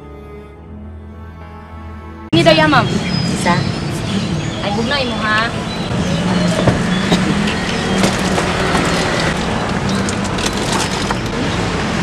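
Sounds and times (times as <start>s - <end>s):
street traffic: 2.3s - 12.0s
low engine hum: 2.4s - 12.0s.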